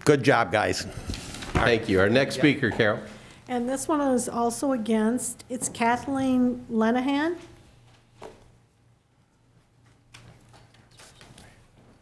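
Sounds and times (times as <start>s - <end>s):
low electrical hum: 0.0s - 12.0s
faint footsteps: 9.2s - 12.0s.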